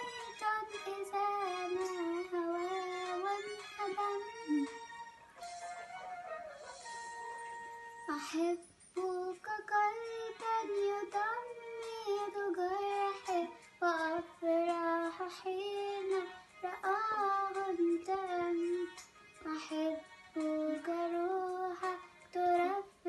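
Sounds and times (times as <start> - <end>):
girl singing a hymn: 0.0 - 4.7, 8.1 - 23.0.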